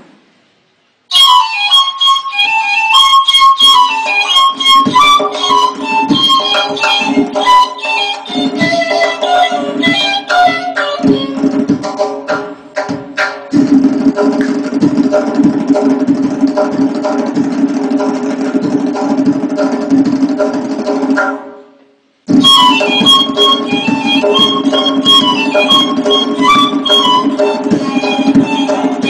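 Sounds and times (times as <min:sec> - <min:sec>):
reed flute melody: 0:01.1 - 0:11.4, 0:22.3 - 0:29.0
goblet drum strokes: 0:03.4 - 0:13.0, 0:22.3 - 0:29.0
goblet drum roll: 0:03.7 - 0:21.6, 0:22.3 - 0:29.0.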